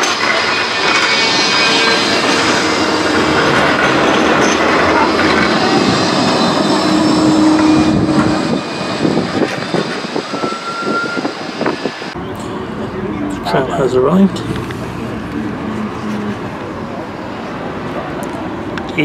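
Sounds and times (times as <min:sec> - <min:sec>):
tram running on rails: 0:00.0 - 0:19.0.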